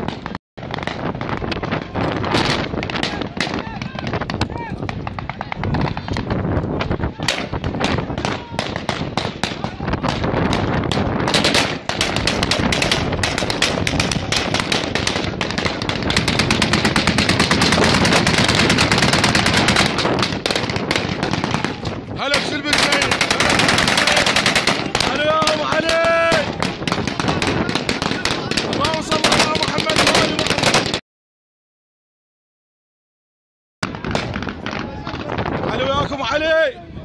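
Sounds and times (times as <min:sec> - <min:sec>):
automatic gunfire: 0:07.3 - 0:31.0
person shouting: 0:25.0 - 0:26.5.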